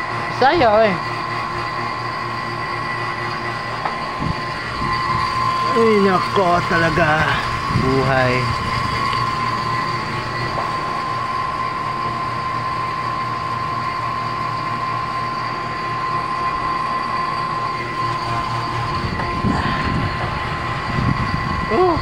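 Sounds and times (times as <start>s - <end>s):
vacuum pump humming: 0.0s - 22.0s.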